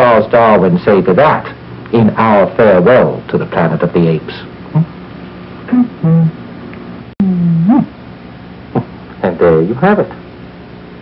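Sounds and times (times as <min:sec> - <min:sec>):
man humming: 0:04.7 - 0:05.0, 0:05.7 - 0:06.4, 0:07.2 - 0:08.0
short vocal sound: 0:05.7 - 0:06.4, 0:07.2 - 0:08.0.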